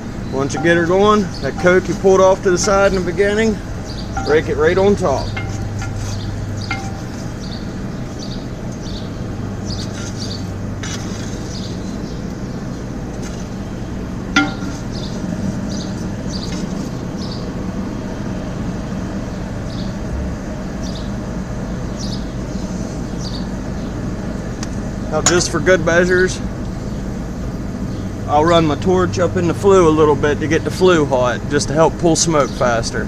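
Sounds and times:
forge air blower humming: 0.0s - 33.0s.

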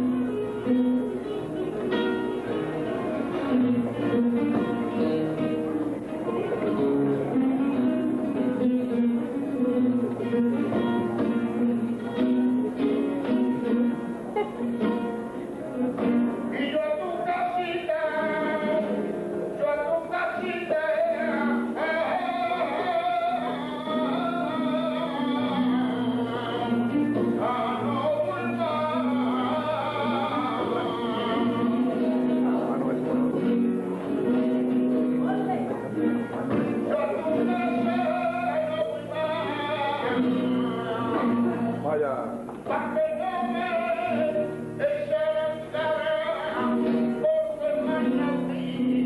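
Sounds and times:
flamenco guitar: 0.0s - 49.0s
man singing flamenco: 0.0s - 49.0s.

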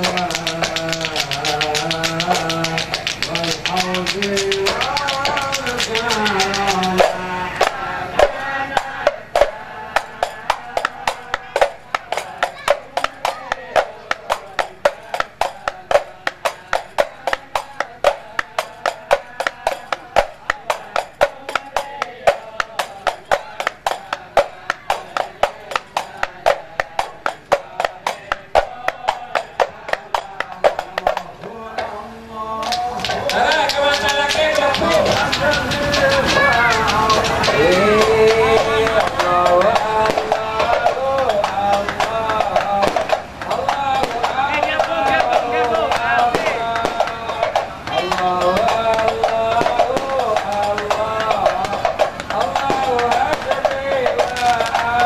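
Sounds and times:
hand clapping: 0.0s - 31.9s, 32.6s - 55.0s
frame drums: 0.0s - 32.0s, 32.6s - 55.0s
group of men singing: 0.0s - 55.0s.

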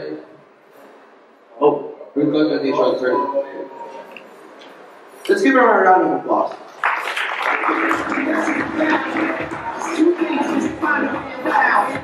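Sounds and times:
music playing: 2.7s - 4.4s, 7.4s - 12.0s
audience applauding: 6.7s - 10.8s.

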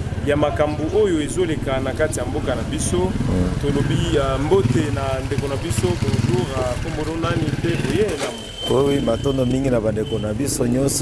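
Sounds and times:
motorcycle engine running: 0.0s - 8.2s
man talking: 0.2s - 11.0s.

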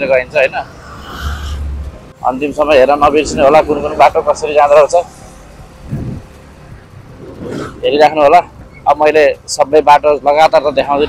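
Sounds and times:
motorcycle engine and road noise: 0.0s - 11.0s.

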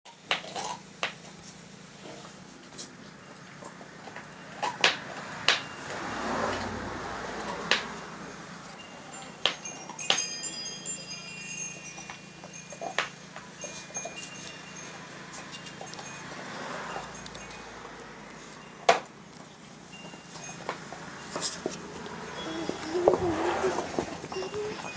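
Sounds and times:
high ringing tones: 5.6s - 7.0s, 8.2s - 19.2s, 19.8s - 24.9s.

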